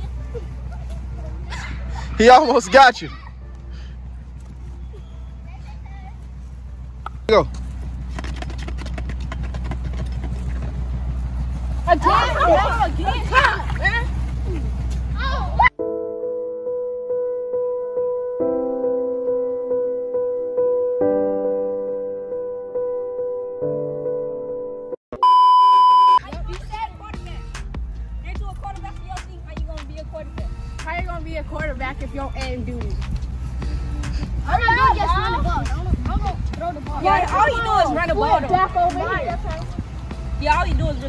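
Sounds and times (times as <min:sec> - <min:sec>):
steady low rumble: 0:03.3 - 0:15.7, 0:26.2 - 0:41.0
children's voices: 0:11.9 - 0:15.7, 0:33.8 - 0:39.8
soft piano music: 0:15.7 - 0:25.0
high-pitched beep: 0:25.2 - 0:26.2
wind rumbling on microphone: 0:30.4 - 0:41.0.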